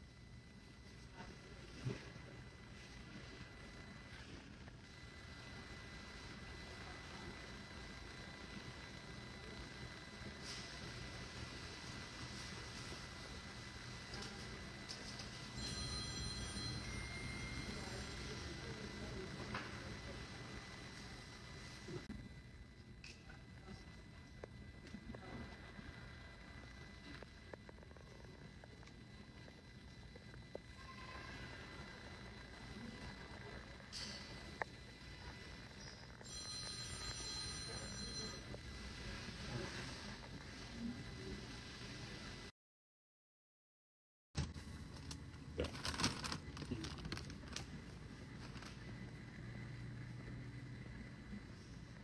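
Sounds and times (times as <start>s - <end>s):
airport terminal hum: 0.0s - 42.5s, 44.4s - 52.0s.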